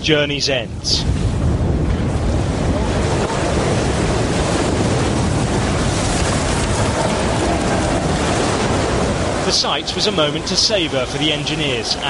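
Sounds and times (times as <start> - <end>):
tunnel boring machine grinding rock: 1.4 - 12.0.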